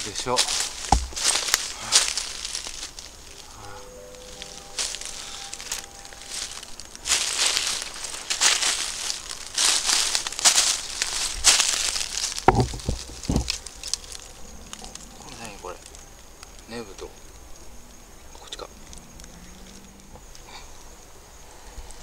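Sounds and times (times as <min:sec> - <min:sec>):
footsteps crunching dry leaves: 0:00.0 - 0:17.1.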